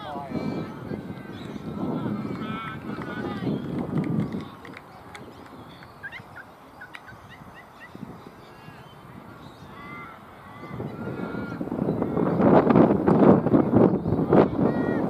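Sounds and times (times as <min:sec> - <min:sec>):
birds chirping: 0:00.0 - 0:12.7, 0:13.6 - 0:15.0
bird arched calls: 0:05.6 - 0:12.2.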